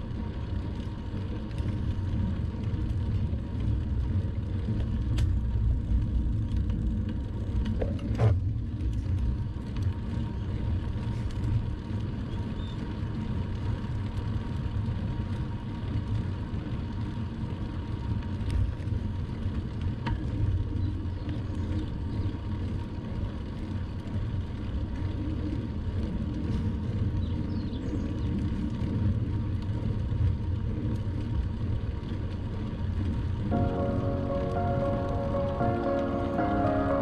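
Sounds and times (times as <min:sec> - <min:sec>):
wind and tyre noise: 0:00.0 - 0:37.0
background music: 0:33.5 - 0:37.0.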